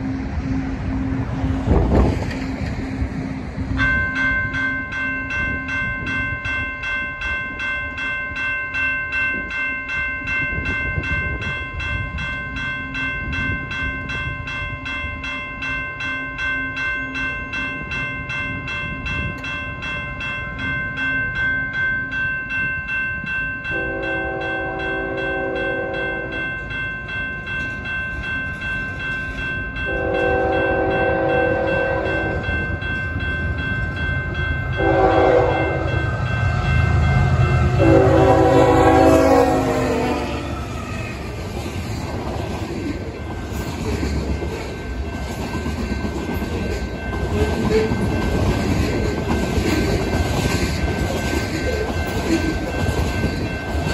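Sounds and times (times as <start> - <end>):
diesel locomotive rumble: 0.0 - 6.2, 29.7 - 53.9
crossing warning bell ringing: 0.0 - 53.9
train horn blasts: 23.7 - 26.4, 29.9 - 32.5, 34.7 - 41.0.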